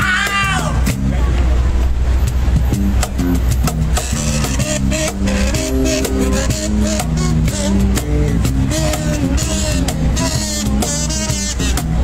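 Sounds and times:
cajon beat: 0:00.0 - 0:01.5, 0:02.2 - 0:12.0
electric bass: 0:00.0 - 0:12.0
held melody line: 0:02.7 - 0:12.0
acoustic guitar strummed: 0:02.8 - 0:12.0.

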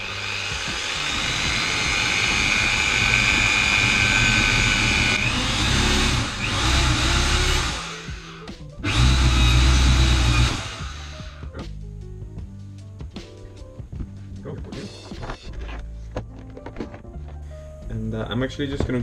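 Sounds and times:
power drill whining through plastic: 0:00.0 - 0:11.4.

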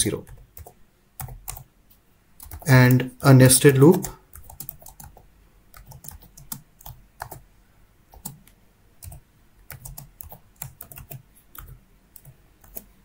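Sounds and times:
keyboard typing clicks: 0:00.3 - 0:01.7, 0:02.4 - 0:03.0, 0:03.8 - 0:07.4, 0:08.1 - 0:12.9.

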